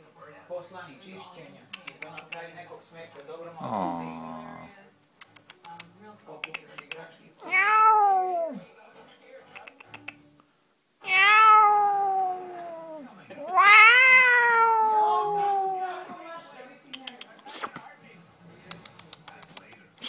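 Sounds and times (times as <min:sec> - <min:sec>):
kitten meowing: 0:07.4 - 0:08.6, 0:11.1 - 0:15.8.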